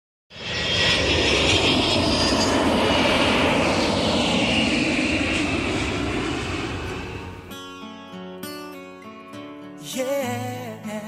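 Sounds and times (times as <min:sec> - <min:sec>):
jet engines roaring: 0:00.3 - 0:07.6.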